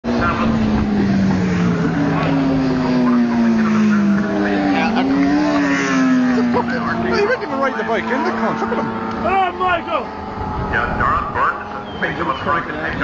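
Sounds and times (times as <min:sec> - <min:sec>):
racing motorcycle engines revving: 0:00.0 - 0:13.0.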